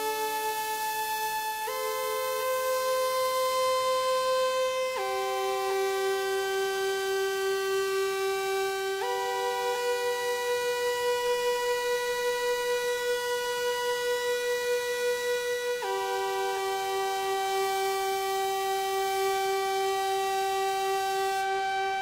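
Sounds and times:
synthesizer pad held notes: 18.9 - 22.0.

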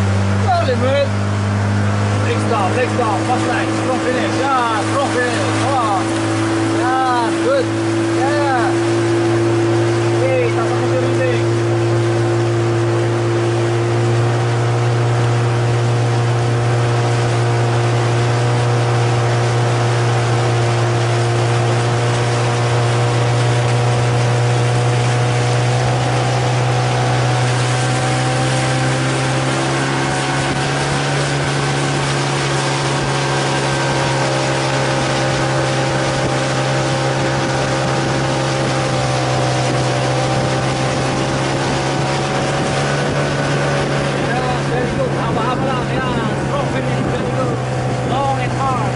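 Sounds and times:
motorboat engine running: 0.0 - 48.9.

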